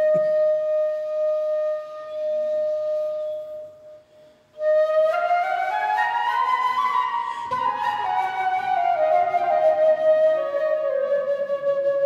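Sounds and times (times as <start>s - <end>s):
flute playing: 0.0s - 12.0s.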